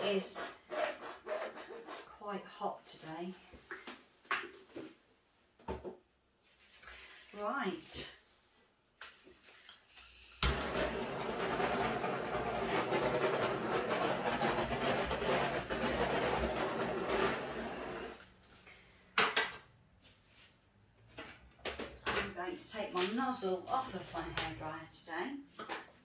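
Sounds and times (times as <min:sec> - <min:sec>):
hair dryer blowing: 0:10.4 - 0:18.2.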